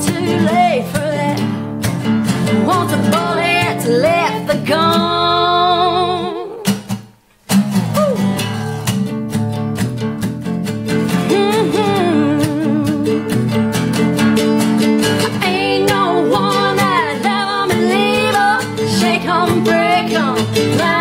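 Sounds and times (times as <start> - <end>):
woman singing: 0.0 - 1.6, 2.5 - 6.8, 11.2 - 13.3, 15.2 - 21.0
strummed acoustic guitars: 0.0 - 21.0.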